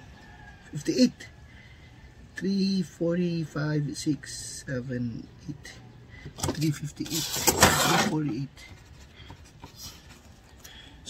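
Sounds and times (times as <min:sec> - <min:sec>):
man talking: 0:00.7 - 0:01.4, 0:02.3 - 0:08.8.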